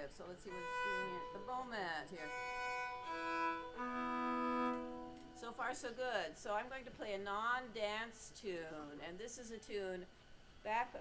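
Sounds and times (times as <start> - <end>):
fiddle bowed double stops: 0.5 - 5.4.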